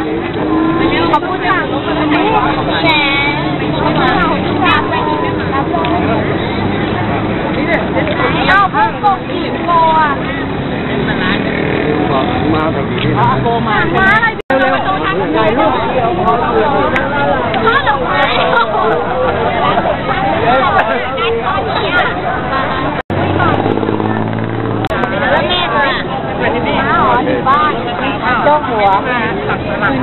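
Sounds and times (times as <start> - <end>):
crowd chatter: 0.0 - 30.0
steady background noise: 0.0 - 30.0
low motor hum: 23.1 - 25.0.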